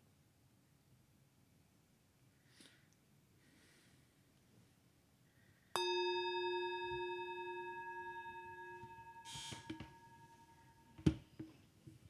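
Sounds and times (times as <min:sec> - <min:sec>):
singing bowl ringing: 0:05.8 - 0:11.0.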